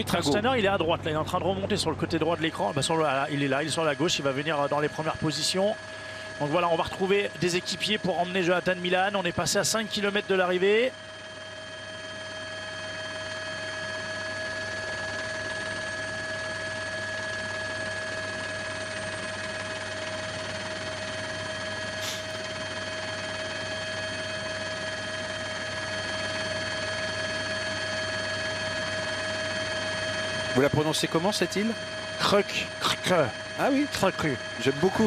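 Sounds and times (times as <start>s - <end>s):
helicopter turbine and rotor drone: 0.0s - 35.0s.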